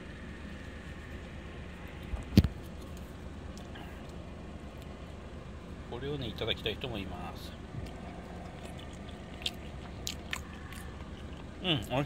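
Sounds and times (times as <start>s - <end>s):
person chewing food: 7.8s - 11.9s.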